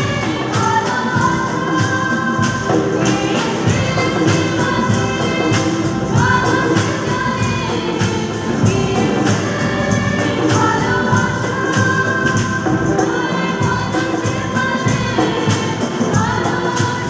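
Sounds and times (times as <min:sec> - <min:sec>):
acoustic guitars strumming: 0:00.0 - 0:17.0
women singing a religious song: 0:00.0 - 0:17.0.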